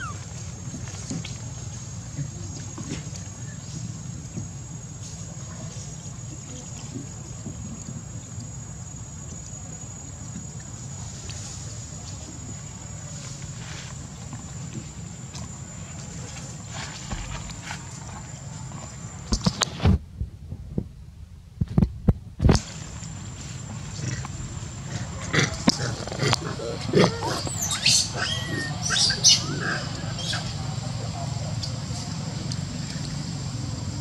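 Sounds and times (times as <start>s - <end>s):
baby monkey squealing: 0.0s - 0.2s, 27.0s - 30.6s.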